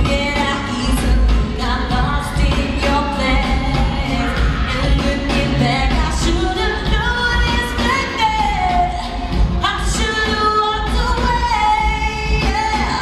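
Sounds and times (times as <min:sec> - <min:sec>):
loud band with heavy bass: 0:00.0 - 0:13.0
woman singing into a microphone: 0:00.0 - 0:13.0.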